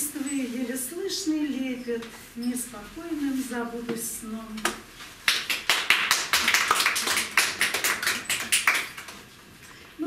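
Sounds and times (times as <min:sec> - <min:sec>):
audience clapping: 0:05.2 - 0:09.2.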